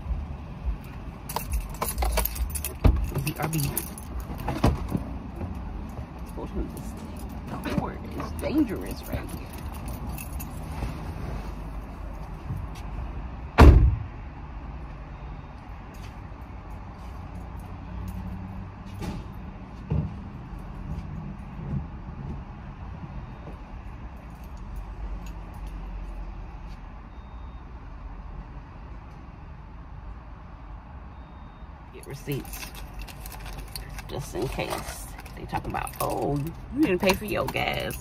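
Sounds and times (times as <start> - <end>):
low rumble of vehicles: 0.0 - 38.0
car door slamming: 13.6 - 14.1.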